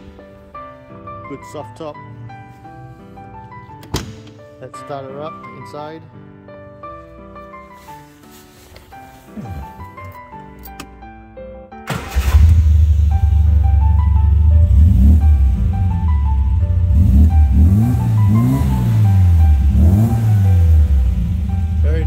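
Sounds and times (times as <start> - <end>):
car engine idling with throttle blips: 12.8 - 21.8.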